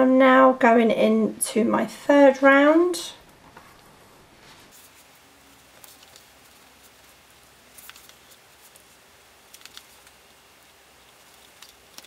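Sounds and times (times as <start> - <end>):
soft handling rustles: 3.4 - 9.0.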